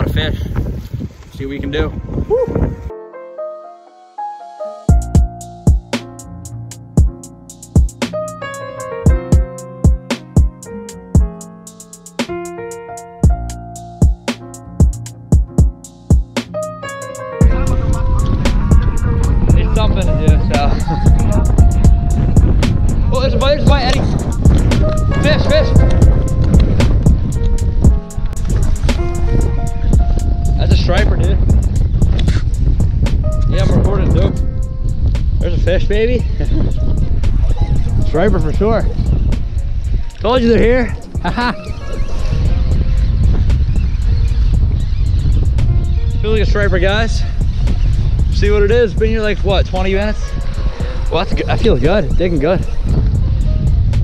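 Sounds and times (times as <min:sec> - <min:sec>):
wind buffeting microphone: 0:00.0 - 0:03.0, 0:13.2 - 0:54.0
background music: 0:02.3 - 0:43.6.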